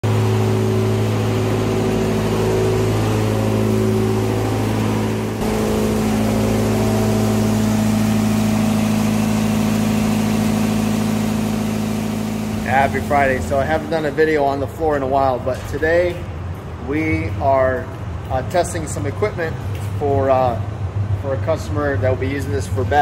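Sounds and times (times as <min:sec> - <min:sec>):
shop machine motor humming: 0:00.0 - 0:19.4.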